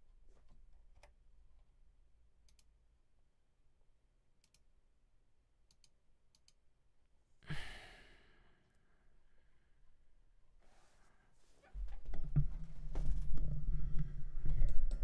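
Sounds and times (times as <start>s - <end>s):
person sighing: 7.4s - 8.6s.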